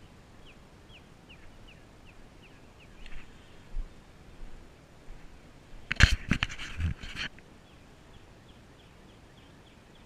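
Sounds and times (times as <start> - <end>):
songbird calling: 0.0 - 3.7, 7.5 - 10.0.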